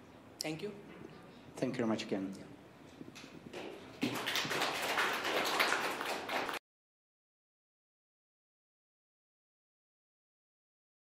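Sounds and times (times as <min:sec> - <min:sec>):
audience applauding: 0:04.0 - 0:06.6.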